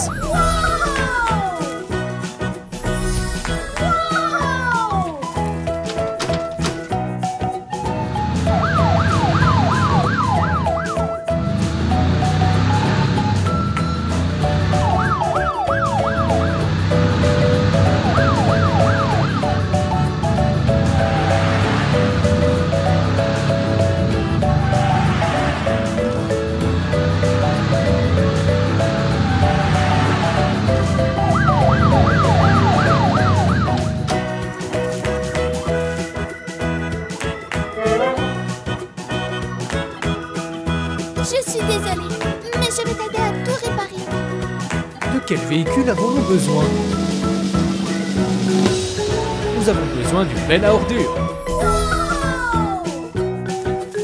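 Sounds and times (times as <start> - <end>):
fast yelping siren: 0.0 - 1.6, 8.2 - 11.4, 14.7 - 16.7, 17.6 - 20.1, 29.2 - 34.1
background music: 0.0 - 54.0
music with bass beat: 44.1 - 54.0.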